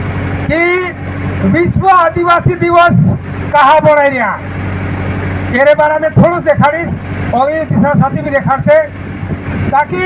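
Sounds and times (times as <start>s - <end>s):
steady low hum: 0.0s - 10.0s
man speaking over loudspeaker: 0.5s - 4.5s, 5.5s - 9.0s, 9.7s - 10.0s.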